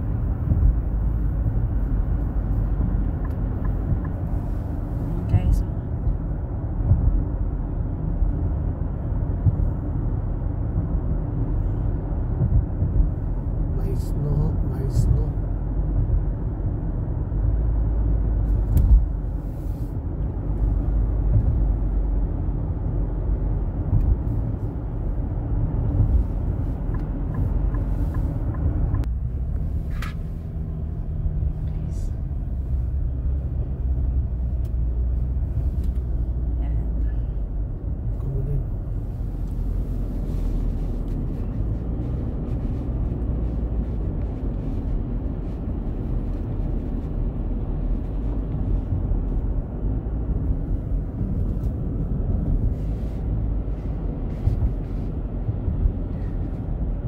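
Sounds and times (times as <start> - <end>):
car tyre and engine rumble: 0.0 - 57.0.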